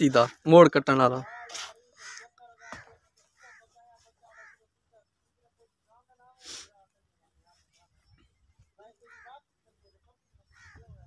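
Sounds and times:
faint bird calls: 0:01.2 - 0:05.2, 0:07.5 - 0:11.0.

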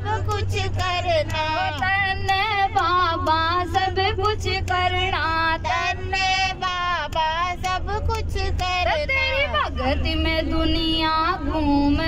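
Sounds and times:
bus rumble: 0:00.0 - 0:12.0
woman singing into microphone: 0:00.0 - 0:12.0.

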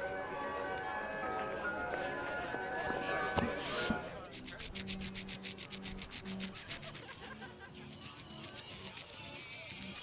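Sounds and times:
rapid mechanical clicking: 0:04.4 - 0:10.0.

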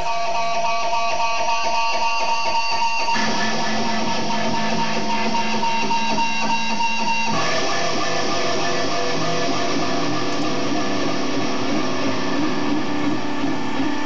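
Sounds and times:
live band playing loudly: 0:03.0 - 0:10.2.

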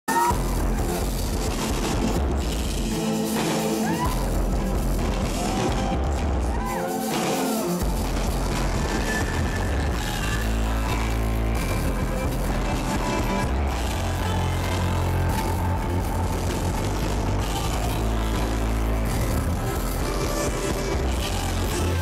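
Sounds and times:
drums: 0:00.0 - 0:22.0
bass guitar: 0:00.1 - 0:22.0
electric guitar: 0:00.1 - 0:22.0.

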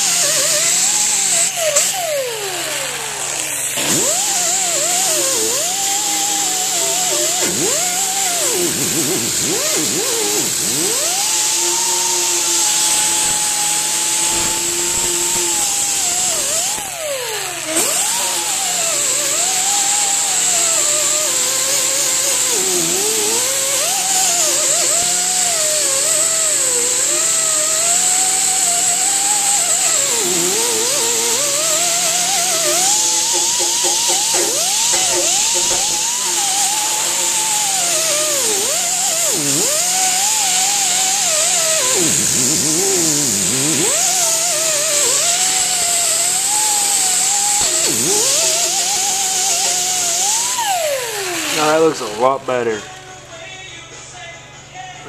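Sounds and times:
wire wheel brush scrubbing metal: 0:21.7 - 0:50.6.

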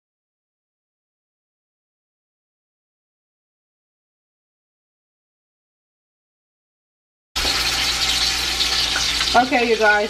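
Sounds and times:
chicken frying in hot oil: 0:07.4 - 0:10.0.

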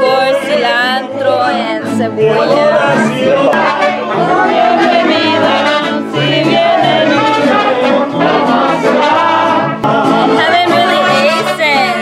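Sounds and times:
bass line: 0:00.0 - 0:12.0
person singing: 0:00.0 - 0:12.0
trumpets playing melody: 0:03.3 - 0:12.0.

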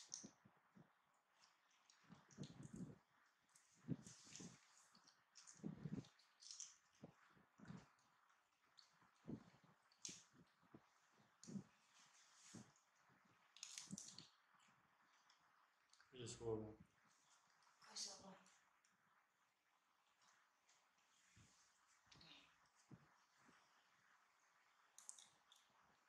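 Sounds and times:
monkey chewing cabbage leaves: 0:01.3 - 0:16.1.

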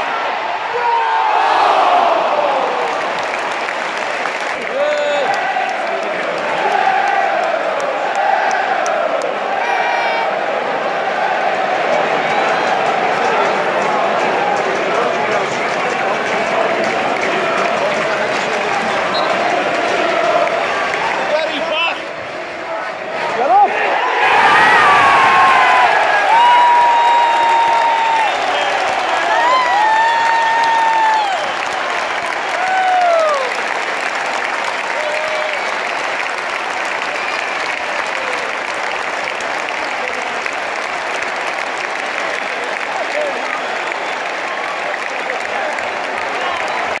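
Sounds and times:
crowd clapping: 0:00.0 - 0:22.8, 0:23.4 - 0:47.0
fans shouting: 0:00.0 - 0:47.0
stadium crowd cheering: 0:00.0 - 0:47.0.

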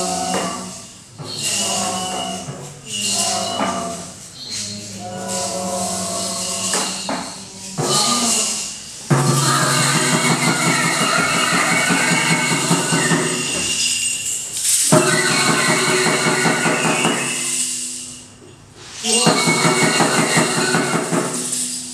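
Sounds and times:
group playing instruments: 0:07.8 - 0:13.8, 0:14.9 - 0:18.2.

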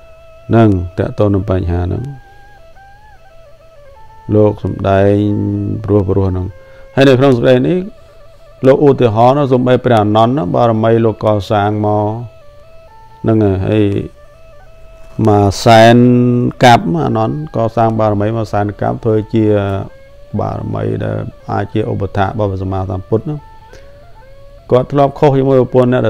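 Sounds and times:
faint background music: 0:00.0 - 0:26.0
slow melody of long notes: 0:00.0 - 0:26.0
man speaking: 0:00.5 - 0:02.2, 0:04.3 - 0:08.0, 0:08.6 - 0:12.3, 0:13.2 - 0:14.2, 0:15.1 - 0:23.5, 0:24.7 - 0:26.0.

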